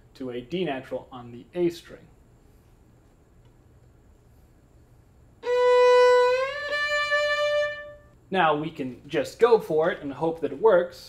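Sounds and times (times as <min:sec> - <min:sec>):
bowed violin note sliding up: 0:05.4 - 0:08.1.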